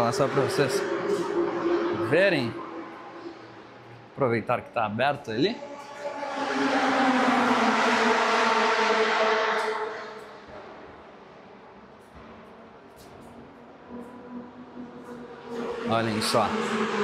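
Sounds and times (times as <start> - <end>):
racing car engine running hard: 0.0 - 4.2, 5.5 - 11.1, 13.0 - 17.0.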